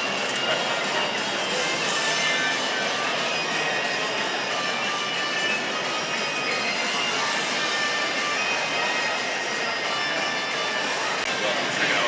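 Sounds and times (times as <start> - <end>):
indistinct crowd chatter: 0.0 - 12.0.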